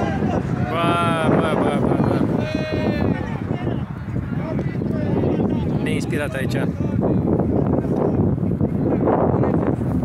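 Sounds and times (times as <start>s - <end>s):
people shouting high calls: 0.0s - 3.9s
loud outdoor noise: 0.0s - 10.0s.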